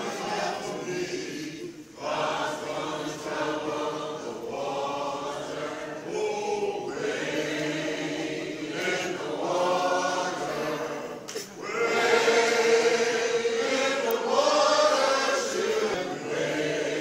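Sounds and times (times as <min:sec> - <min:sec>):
group singing long notes: 0:00.0 - 0:17.0.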